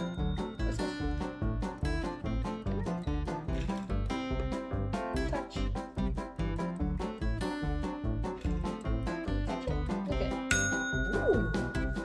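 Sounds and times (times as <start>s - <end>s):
background music: 0.0s - 12.0s
desk service bell ding: 10.5s - 12.0s.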